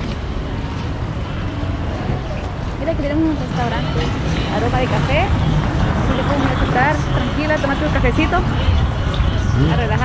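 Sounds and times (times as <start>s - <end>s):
traffic rumble: 0.0s - 10.0s
people talking: 2.8s - 5.4s, 6.0s - 8.7s, 9.5s - 10.0s.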